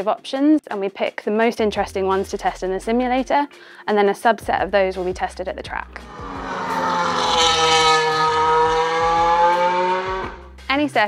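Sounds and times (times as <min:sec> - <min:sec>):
racing car engine at speed: 0:06.0 - 0:10.5.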